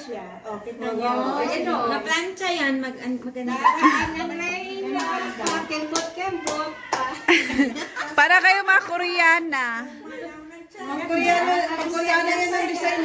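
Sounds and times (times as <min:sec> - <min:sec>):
women talking: 0:00.0 - 0:13.0
sharp hand claps: 0:04.9 - 0:07.4.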